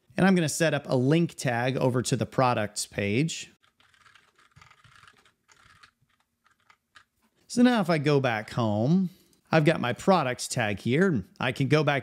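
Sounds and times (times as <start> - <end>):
typing on keyboard: 3.6 - 7.1.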